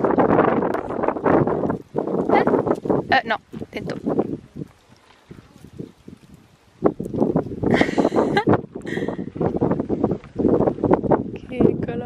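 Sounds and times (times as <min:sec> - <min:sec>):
wind buffeting microphone: 0:00.0 - 0:12.0.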